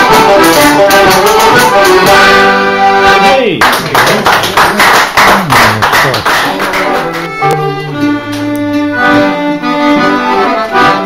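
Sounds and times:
small group clapping: 0:00.0 - 0:02.4, 0:03.5 - 0:08.7.

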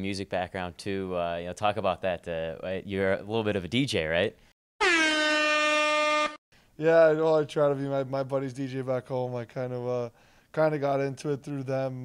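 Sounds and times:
buzzy horn blast: 0:04.8 - 0:06.4.

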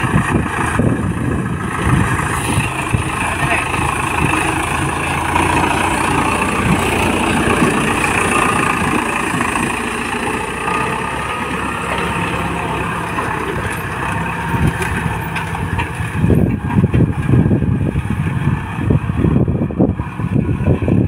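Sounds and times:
tractor diesel engine under load: 0:00.0 - 0:21.0.

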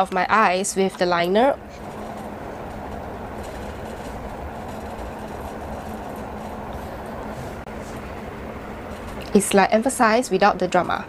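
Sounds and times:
faint hum: 0:00.0 - 0:11.0
low background rumble: 0:00.0 - 0:11.0.

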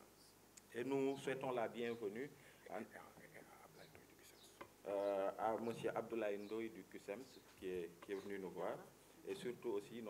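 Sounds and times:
man speaking: 0:00.7 - 0:10.0
man whispering: 0:02.6 - 0:05.9.

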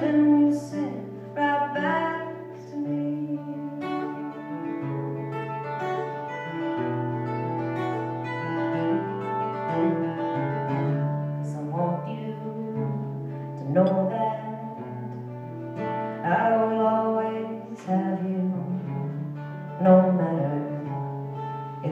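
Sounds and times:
acoustic guitar chords: 0:00.0 - 0:21.9.

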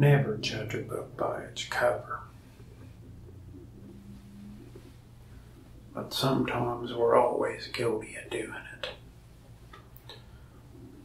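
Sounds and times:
low steady hum: 0:00.0 - 0:11.0
faint held tone: 0:03.5 - 0:05.5.

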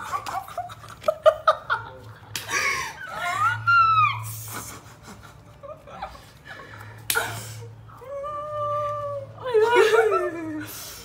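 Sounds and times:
woman squealing with excitement: 0:03.1 - 0:04.4.

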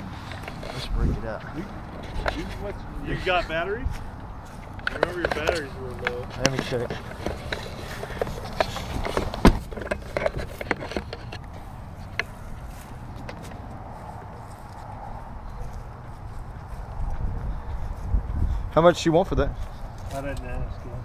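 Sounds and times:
handling clicks and knocks: 0:01.7 - 0:02.8, 0:04.7 - 0:12.4.

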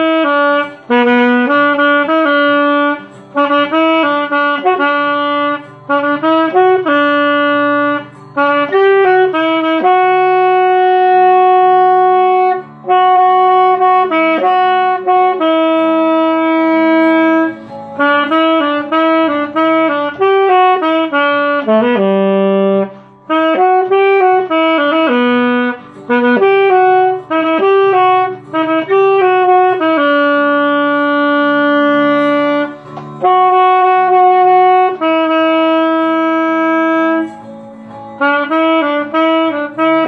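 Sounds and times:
saxophone holding a long note: 0:00.0 - 0:37.6, 0:38.2 - 0:40.0.

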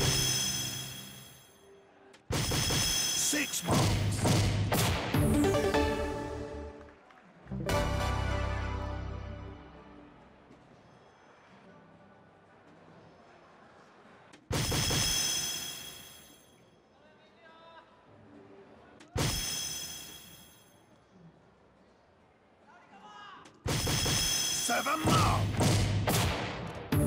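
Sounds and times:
low murmur of hall: 0:09.8 - 0:14.5, 0:16.7 - 0:19.2, 0:20.8 - 0:23.7.

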